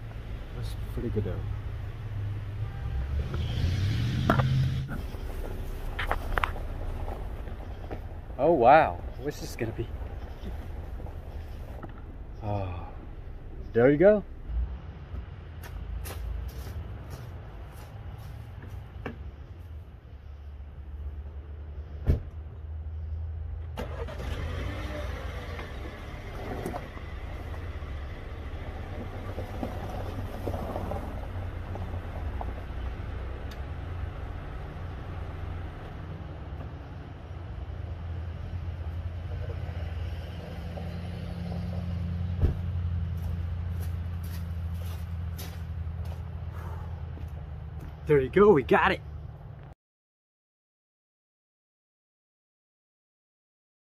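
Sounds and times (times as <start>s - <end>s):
car engine starting and idling: 0.0s - 14.5s, 23.5s - 39.6s
sharp thump: 22.0s - 22.3s, 42.4s - 42.7s.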